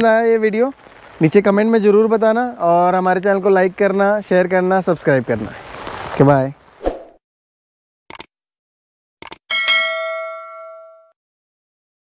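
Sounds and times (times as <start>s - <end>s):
quick clicks: 8.1s - 8.3s, 9.2s - 9.4s
bell ding: 9.5s - 11.2s.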